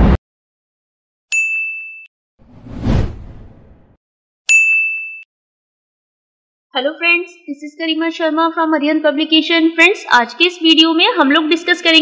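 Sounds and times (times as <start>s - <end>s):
whoosh: 2.4s - 4.0s
bright bell-like ding: 4.5s - 5.3s.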